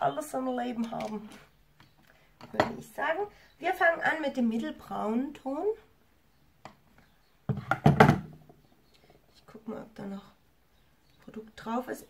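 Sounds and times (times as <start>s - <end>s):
makeup items knocking on table: 7.5s - 8.3s.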